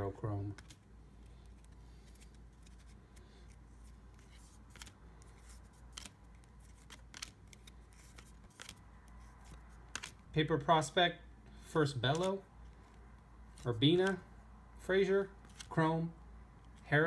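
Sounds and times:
low steady hum: 0.0s - 17.0s
trading cards flipped by hand: 0.4s - 10.3s, 12.0s - 14.2s, 15.4s - 15.8s.

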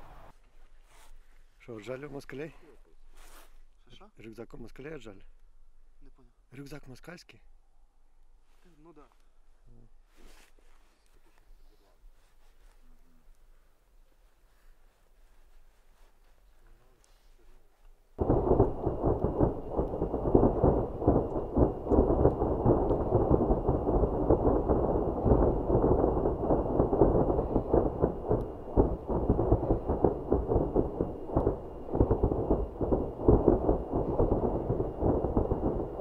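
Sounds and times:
faint high whine: 18.2s - 36.0s
loud continuous rumbling: 18.2s - 36.0s.

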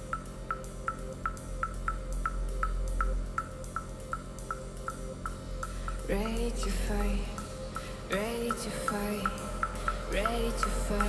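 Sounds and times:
deep bass drone: 0.0s - 11.0s
short high electronic ticks: 0.0s - 11.0s.

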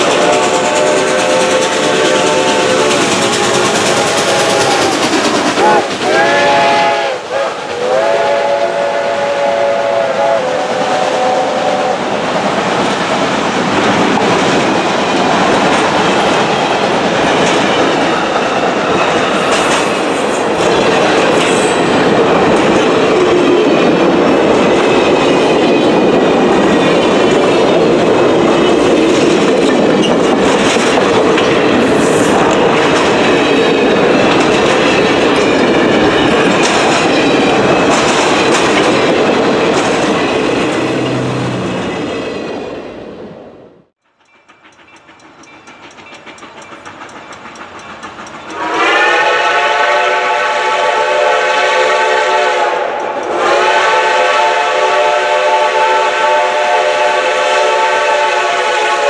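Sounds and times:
train coaches rumbling past: 0.0s - 59.0s
wheels clicking over rail joints: 12.2s - 41.2s, 44.0s - 48.7s.

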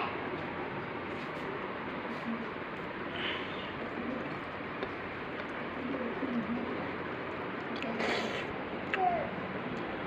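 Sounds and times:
steady background hiss: 0.0s - 10.0s
bird cooing: 3.2s - 4.4s, 5.7s - 7.0s.

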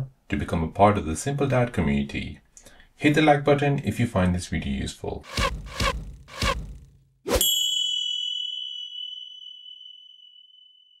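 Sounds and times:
bright chime: 7.4s - 11.0s.

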